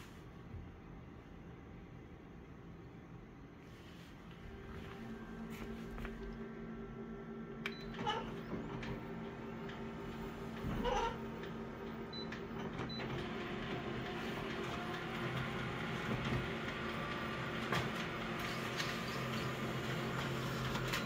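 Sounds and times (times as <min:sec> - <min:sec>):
copier machine hum: 0:00.0 - 0:21.0
copier mechanical running noise: 0:00.0 - 0:21.0.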